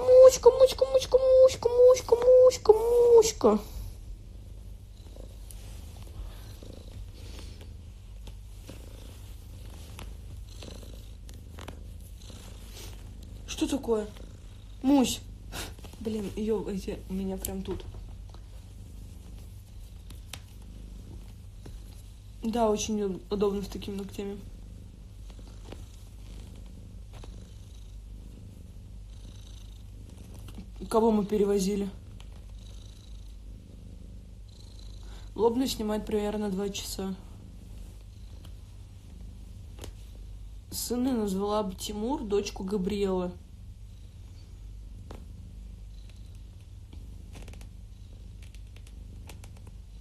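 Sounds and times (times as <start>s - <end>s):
cat purring: 0.0s - 50.0s
faint rustles and clicks: 0.6s - 50.0s.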